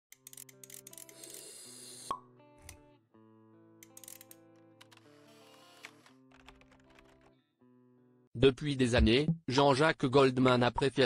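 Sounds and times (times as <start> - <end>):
quiet background music: 0.1 - 11.0.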